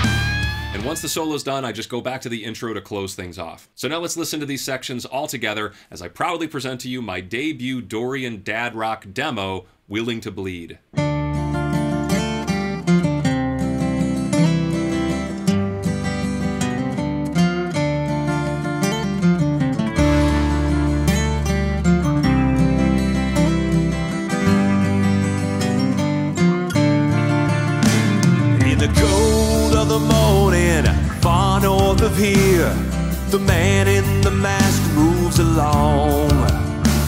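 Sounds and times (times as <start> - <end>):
electric bass guitar: 0.0 - 1.2, 11.0 - 37.0
acoustic guitars playing riff: 0.0 - 1.4, 10.9 - 37.0.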